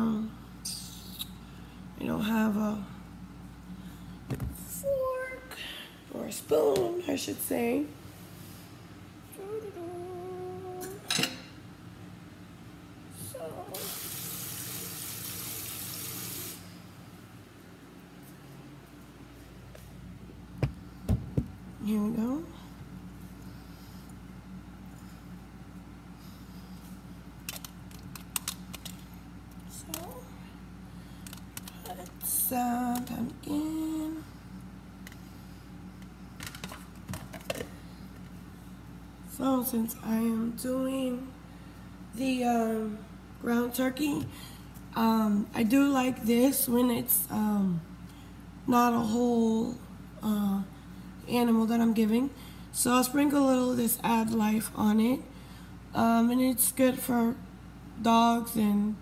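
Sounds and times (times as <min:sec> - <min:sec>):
steady hum: 0:00.0 - 0:59.0
kitchen tap running: 0:13.8 - 0:16.7.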